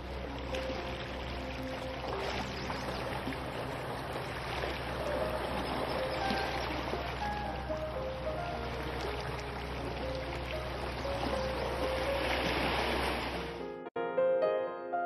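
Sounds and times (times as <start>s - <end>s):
waves washing over rocks: 0.0s - 7.8s, 10.6s - 13.6s
soft background music: 0.0s - 15.0s.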